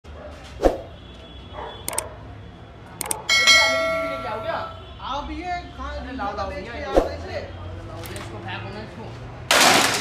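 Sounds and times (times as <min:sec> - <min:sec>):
quick mouse clicks: 0:03.0 - 0:03.2
bell ding: 0:03.3 - 0:04.7.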